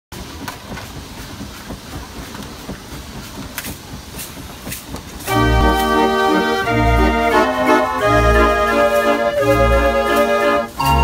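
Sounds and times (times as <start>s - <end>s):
street organ playing a tune: 5.3s - 11.0s.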